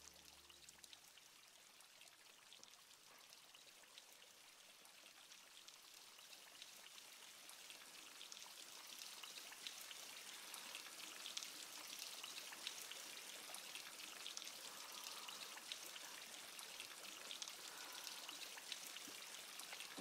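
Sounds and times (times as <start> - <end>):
dripping and trickling water: 0.0 - 20.0.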